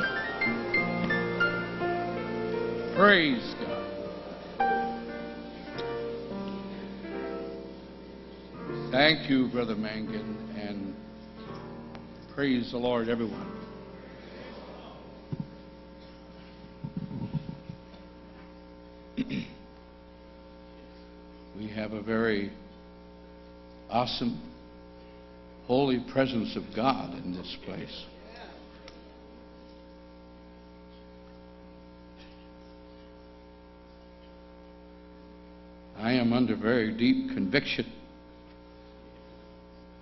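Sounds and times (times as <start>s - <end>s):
electrical mains hum: 0.0s - 40.0s
microphone handling thumps: 15.3s - 15.6s, 16.8s - 17.9s
person clearing throat: 19.1s - 19.7s.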